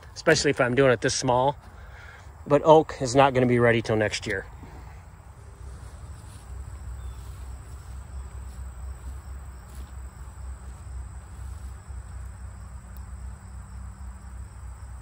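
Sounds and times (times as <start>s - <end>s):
low uneven rumble: 0.0s - 15.0s
high-pitched insect drone: 5.4s - 15.0s.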